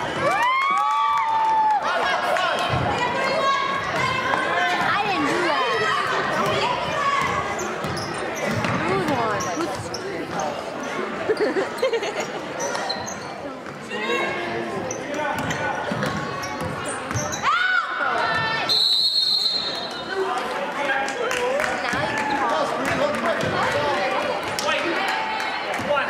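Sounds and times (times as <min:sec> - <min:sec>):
spectators' voices and shouts: 0:00.0 - 0:26.0
referee's whistle: 0:18.6 - 0:20.1.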